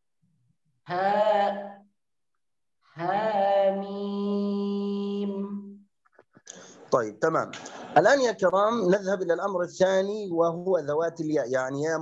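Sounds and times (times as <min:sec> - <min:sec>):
man reciting melodically: 0:07.1 - 0:12.0.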